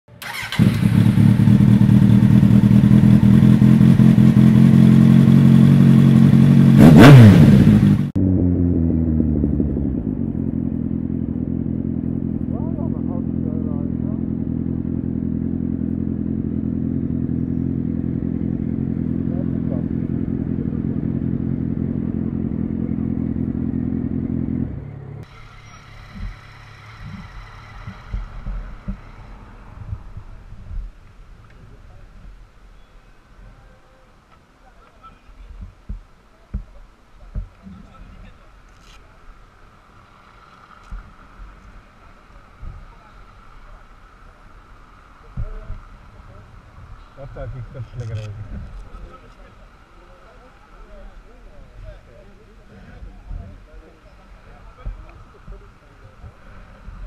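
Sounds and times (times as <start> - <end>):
street sound: 0.0 - 57.0
motorcycle engine running: 0.2 - 31.2, 51.0 - 57.0.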